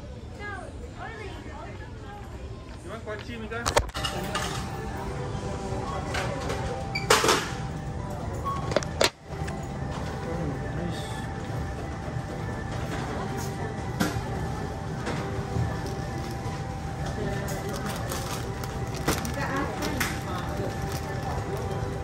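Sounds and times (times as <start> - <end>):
music over store sound: 3.8 - 22.0
groceries clattering: 12.7 - 22.0.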